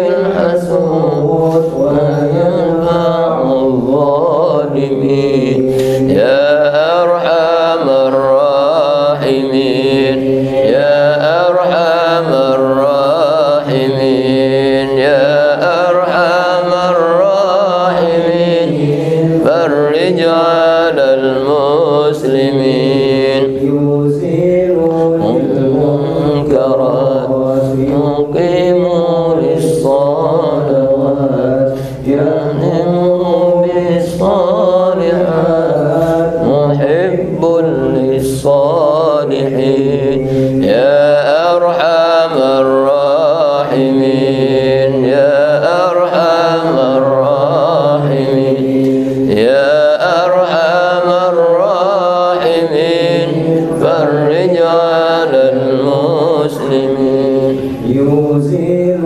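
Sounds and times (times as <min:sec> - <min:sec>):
man chanting into a microphone: 0:00.0 - 0:59.0.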